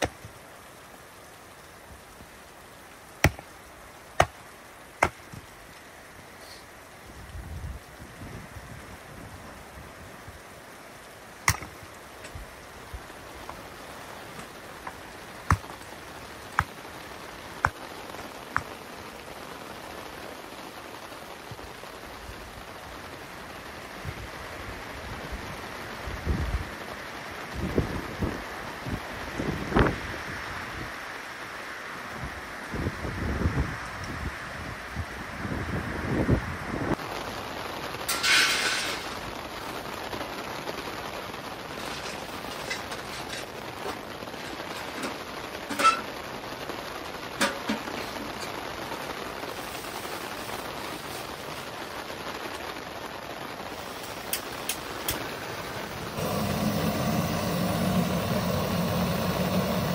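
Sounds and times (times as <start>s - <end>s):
steady rain and sleet: 0.0s - 59.9s
hatchet splitting firewood: 3.2s - 3.5s, 4.2s - 4.4s, 5.0s - 5.4s, 11.5s - 11.8s, 14.8s - 15.9s
wind buffeting microphone: 32.2s - 37.0s, 55.8s - 59.9s.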